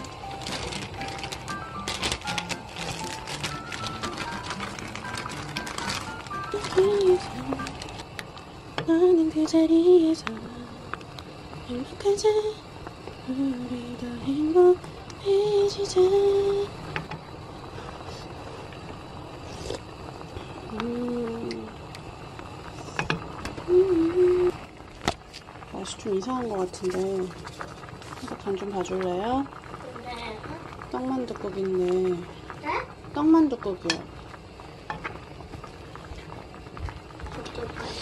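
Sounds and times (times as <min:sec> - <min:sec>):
soup bubbling at a boil: 0:00.0 - 0:38.0.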